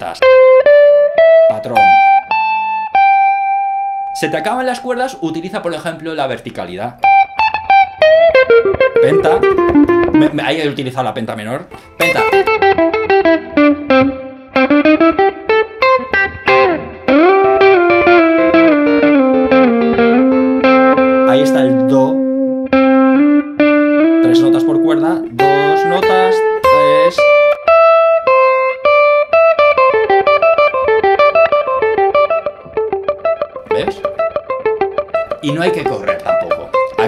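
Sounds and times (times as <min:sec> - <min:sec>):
electric guitar playing melodic runs: 0:00.2 - 0:10.8, 0:11.7 - 0:37.0.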